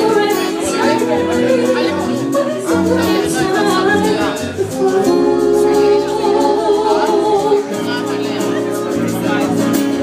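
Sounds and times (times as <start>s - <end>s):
woman singing into microphone: 0.0s - 8.3s
bass: 0.0s - 10.0s
guitar: 0.0s - 10.0s
keyboard chords: 0.0s - 10.0s.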